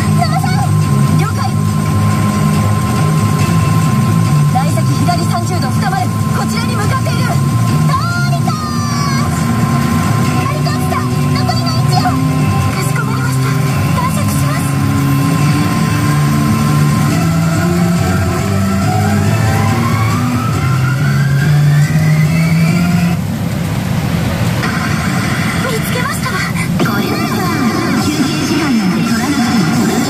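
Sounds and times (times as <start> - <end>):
character voice clips: 0.0 - 1.6, 4.6 - 9.5, 10.3 - 16.2, 24.6 - 30.0
pachinko machine soundtrack: 0.0 - 23.2, 24.6 - 30.0
electronic effects: 0.0 - 23.3, 24.1 - 30.0
rising-pitch sound effect: 8.8 - 23.2.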